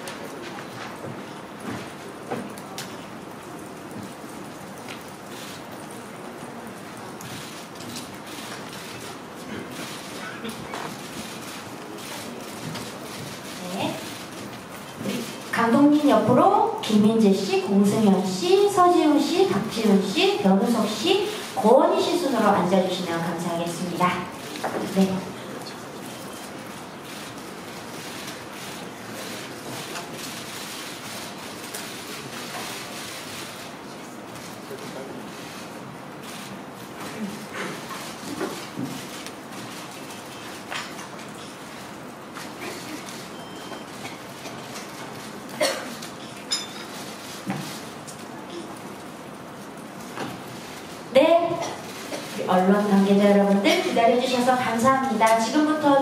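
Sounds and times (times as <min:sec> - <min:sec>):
crowded hall room hiss: 0:00.0 - 0:56.0.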